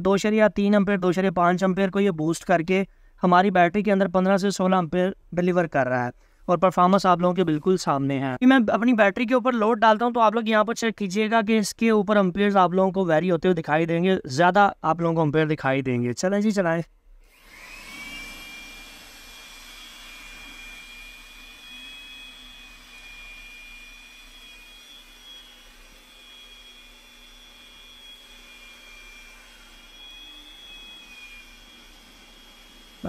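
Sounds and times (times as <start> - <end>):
electric blower whine: 17.2 - 33.0.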